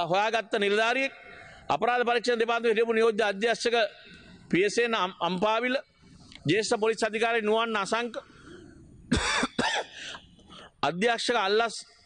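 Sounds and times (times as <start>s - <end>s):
man coughing: 8.4s - 10.2s.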